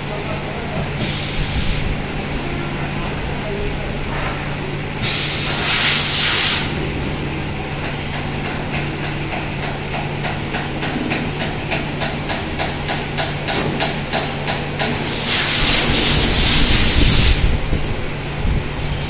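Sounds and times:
machine humming: 0.0s - 19.0s
regular mechanical ticking: 0.3s - 15.2s
compressed air blast hissing: 1.0s - 6.8s, 15.0s - 17.8s.

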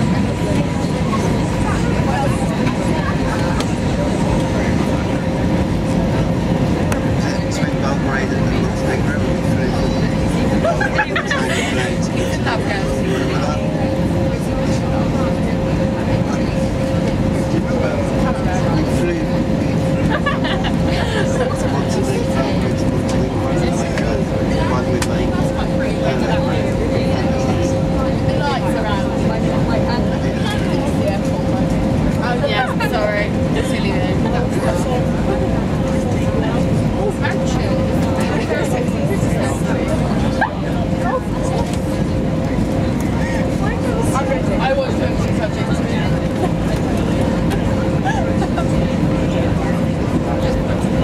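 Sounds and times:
airliner cabin engine rumble: 0.0s - 51.0s
faint passenger chatter: 0.0s - 51.0s
steady mid-pitched hum: 0.0s - 51.0s.

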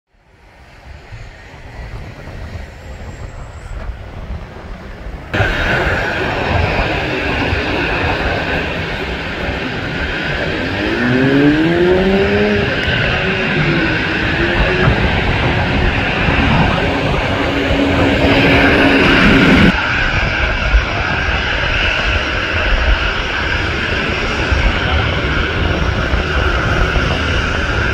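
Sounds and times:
jet engines whining and rumbling: 0.1s - 27.9s
wind noise: 0.2s - 27.9s
tone rising and falling: 10.3s - 19.7s.

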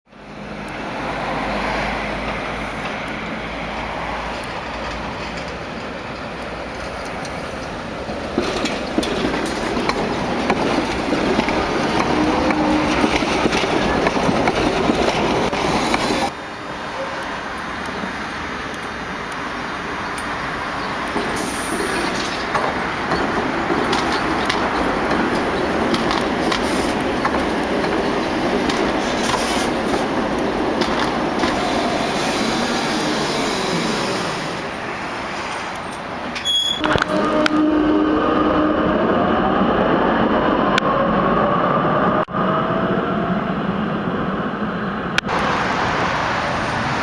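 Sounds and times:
tram rolling on tracks: 0.1s - 47.0s
sharp clicks of tram wheels: 1.9s - 34.8s.

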